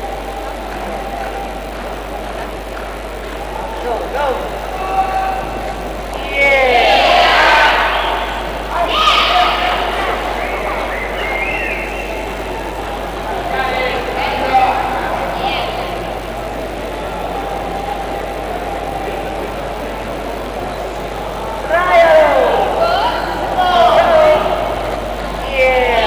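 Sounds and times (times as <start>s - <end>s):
crowd murmur: 0.0s - 26.0s
people yelling and whooping: 0.0s - 26.0s.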